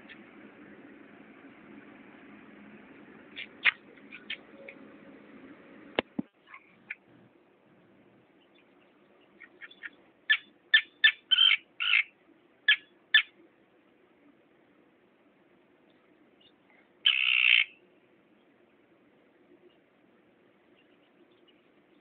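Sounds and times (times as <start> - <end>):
terns calling: 3.3 - 5.1, 8.2 - 13.5, 15.9 - 17.8.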